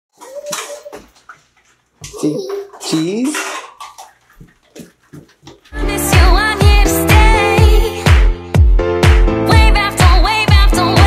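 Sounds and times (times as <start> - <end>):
small dog crying: 0.2 - 1.1.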